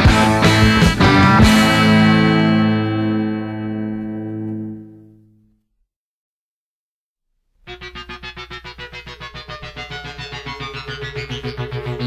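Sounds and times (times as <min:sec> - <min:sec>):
distorted electric guitar chord: 0:00.0 - 0:05.4, 0:07.7 - 0:12.0.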